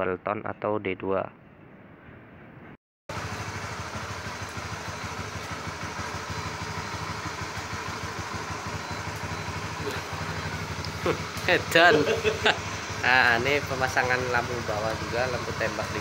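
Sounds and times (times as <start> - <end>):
motorcycle engine idling: 3.1 - 16.0.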